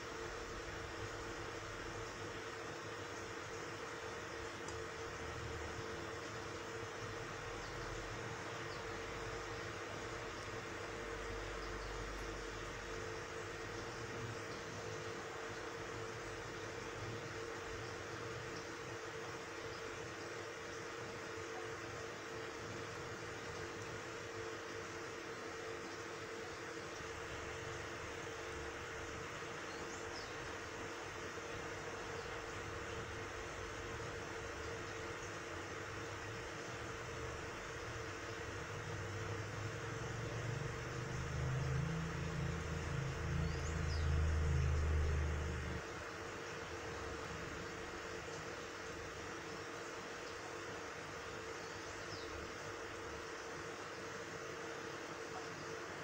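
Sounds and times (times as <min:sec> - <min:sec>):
aquarium equipment hiss and hum: 0:00.0 - 0:56.0.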